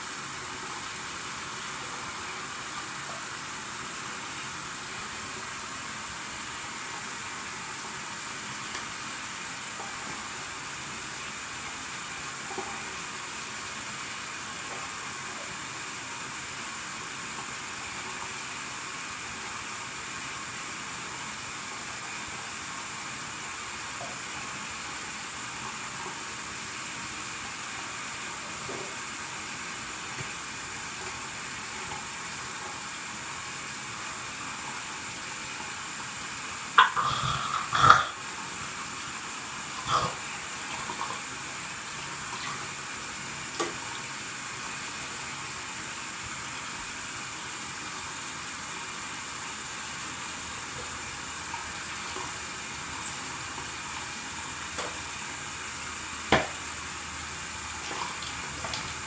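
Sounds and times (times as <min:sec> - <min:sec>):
steady hiss: 0:00.0 - 0:59.0.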